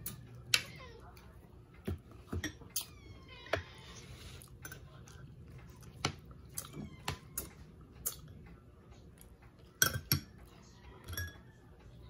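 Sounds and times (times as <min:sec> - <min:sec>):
utensils clinking on ceramic plates: 0:09.6 - 0:11.6.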